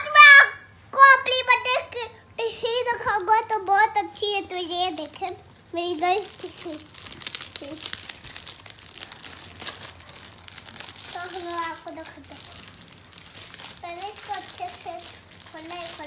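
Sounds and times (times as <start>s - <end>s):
child's voice: 0.0s - 6.9s, 7.6s - 7.9s, 11.1s - 12.5s, 13.8s - 16.0s
plastic bag crinkling: 3.6s - 16.0s.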